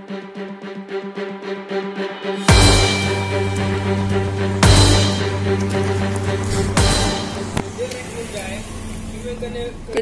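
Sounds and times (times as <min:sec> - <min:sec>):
low outdoor hum: 0:02.5 - 0:10.0.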